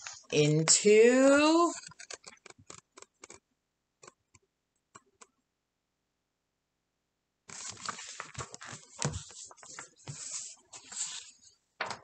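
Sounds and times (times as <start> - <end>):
book page turning: 7.5 - 11.5.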